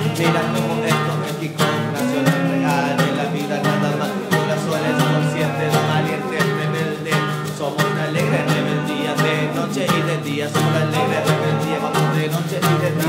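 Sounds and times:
acoustic guitar strumming: 0.0s - 13.0s
man rapping: 0.0s - 13.0s.

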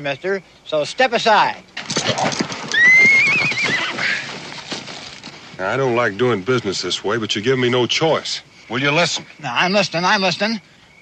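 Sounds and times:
horse whinnying: 1.8s - 4.8s
hoof thuds: 1.8s - 5.6s.

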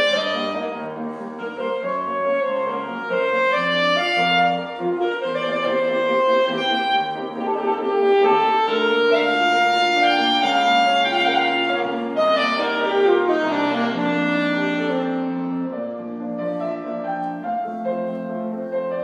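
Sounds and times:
grand piano: 0.0s - 19.0s
saxophone classical melody: 0.0s - 19.0s.

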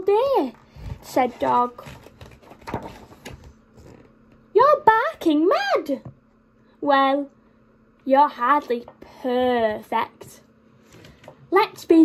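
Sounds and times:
book page rustling: 0.8s - 4.1s.

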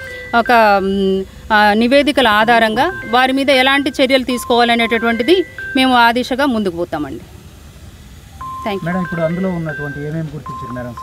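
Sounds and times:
electronic background melody: 0.0s - 6.8s, 8.3s - 11.0s
woman speaking: 0.3s - 7.3s, 8.6s - 9.0s.

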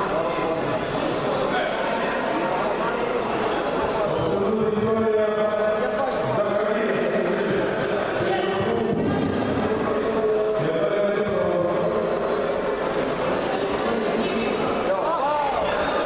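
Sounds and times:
background chatter: 0.0s - 16.0s.

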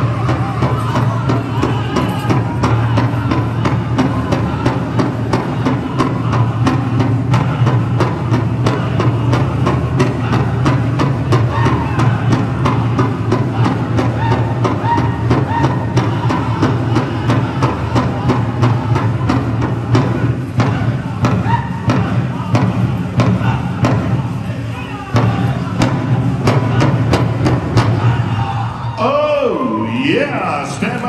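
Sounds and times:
big drum beat: 0.0s - 29.0s
drum group singing: 0.0s - 29.1s.

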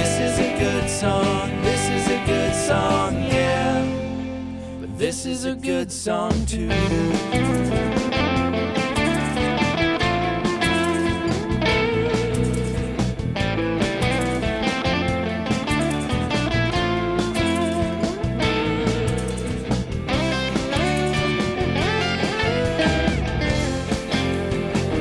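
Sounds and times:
funk-rock band instrumental: 0.0s - 4.8s, 6.3s - 25.0s
electric guitars: 0.0s - 5.6s, 6.6s - 25.0s.

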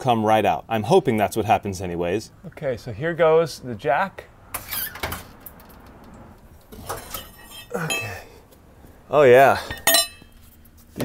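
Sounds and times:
ringing metal clinks: 9.7s - 10.3s.

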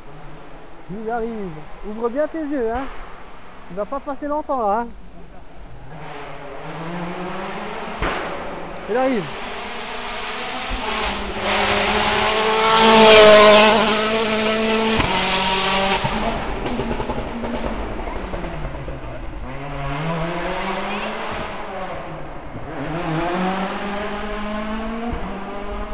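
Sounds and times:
rally car engine passing at speed: 5.6s - 25.9s.

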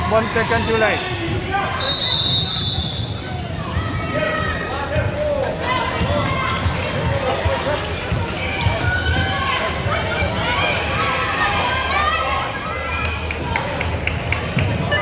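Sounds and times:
many voices chattering: 0.0s - 15.0s.

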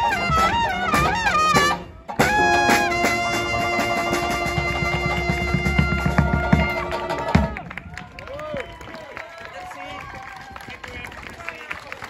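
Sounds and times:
brass band playing: 0.0s - 7.7s.

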